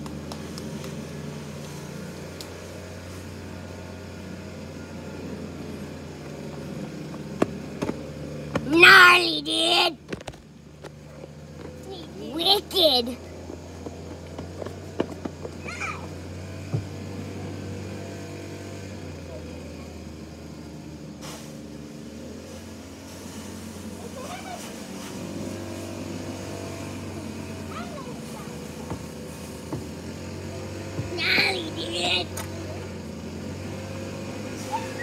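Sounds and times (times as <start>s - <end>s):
distant children's voices: 15.5s - 16.6s, 23.8s - 25.3s, 26.4s - 33.1s, 34.5s - 35.0s.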